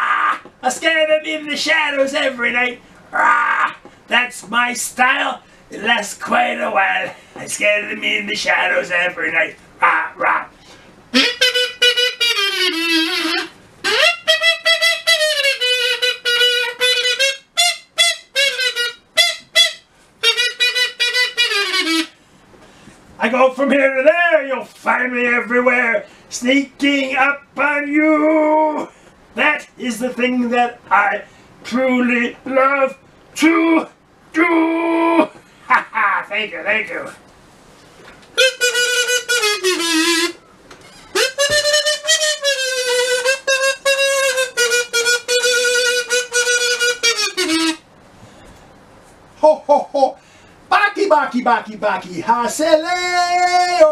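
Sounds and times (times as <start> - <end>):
wind instrument held note: 10.6 - 22.2, 38.4 - 47.8
solo reedy melody: 11.1 - 22.2, 38.3 - 47.8.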